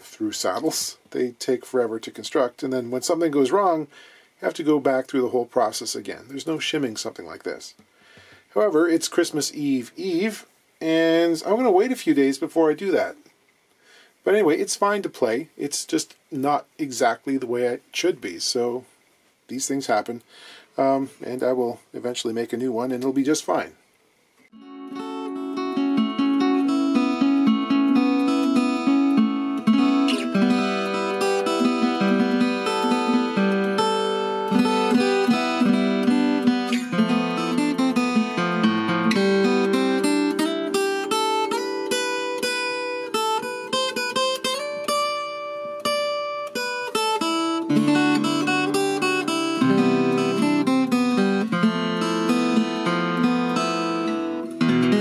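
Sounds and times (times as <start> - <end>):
acoustic guitar played with a pick: 24.5 - 55.0.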